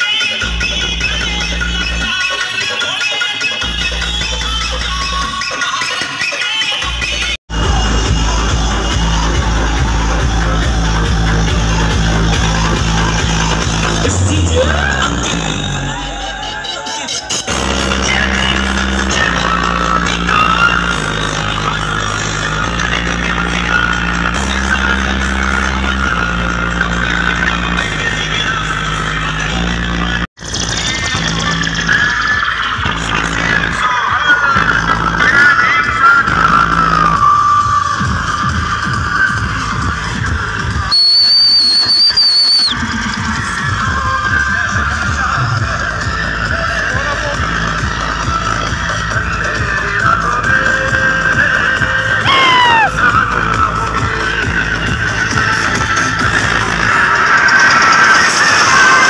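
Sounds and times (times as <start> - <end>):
loud dj music with heavy bass: 0.0 - 40.8, 43.3 - 59.0
high steady whistling tone: 40.9 - 42.8.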